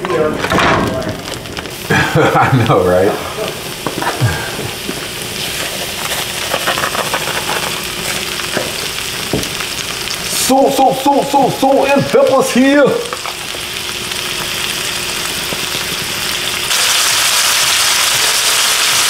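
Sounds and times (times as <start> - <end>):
plastic wrapper crinkling: 0.1 - 10.4
meat sizzling in hot oil: 1.0 - 19.0.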